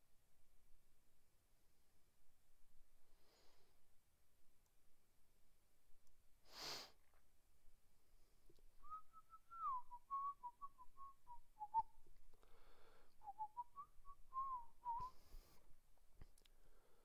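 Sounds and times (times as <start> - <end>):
man whistling a tune: 8.8 - 12.0, 13.2 - 15.6.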